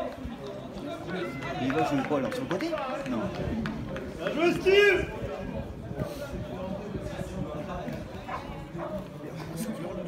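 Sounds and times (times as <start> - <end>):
distant shouts and chatter: 0.0 - 10.0
wind rumbling on microphone: 2.8 - 9.1.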